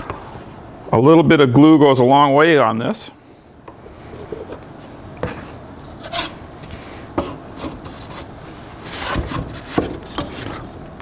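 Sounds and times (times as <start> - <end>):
wood scraping on wood: 7.2 - 10.8.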